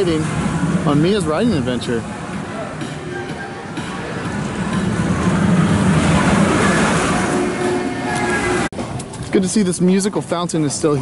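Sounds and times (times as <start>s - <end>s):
ride gondola rolling on track: 0.0s - 9.5s.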